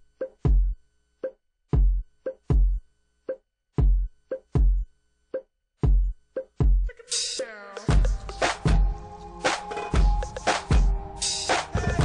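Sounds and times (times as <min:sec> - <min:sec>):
kick drum thumps: 0:00.2 - 0:00.8, 0:01.7 - 0:02.8, 0:03.8 - 0:04.9, 0:05.8 - 0:07.0.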